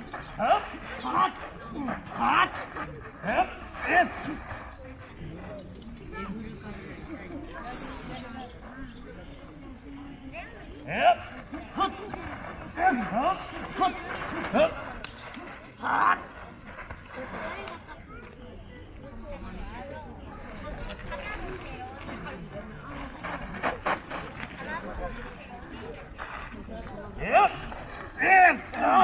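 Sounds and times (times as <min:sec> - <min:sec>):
men shouting: 0:28.2 - 0:29.0.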